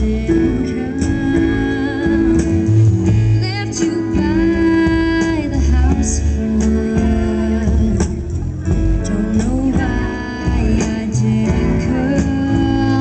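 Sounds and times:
live band playing: 0.0s - 13.0s
woman singing: 0.0s - 13.0s.

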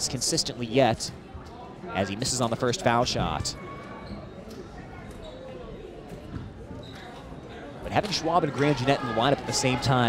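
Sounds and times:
crowd chatter murmur: 0.0s - 10.0s.

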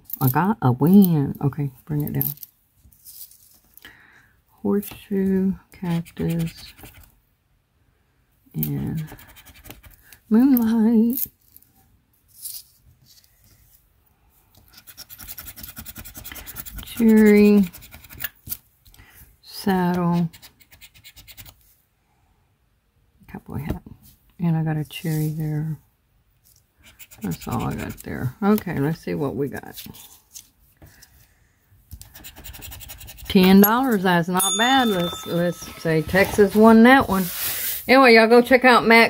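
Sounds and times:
card rustling on tabletop: 34.6s - 37.9s.

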